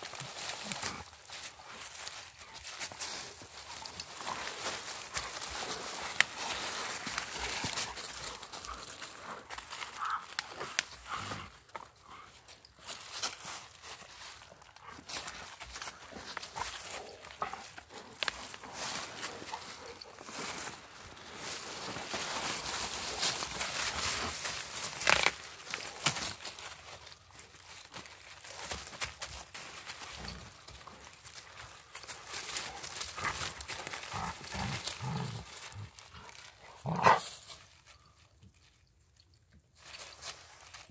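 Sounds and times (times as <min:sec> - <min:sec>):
footsteps in dry leaves: 0:00.0 - 0:38.7, 0:39.8 - 0:40.9
dogs play-growling: 0:33.0 - 0:37.2.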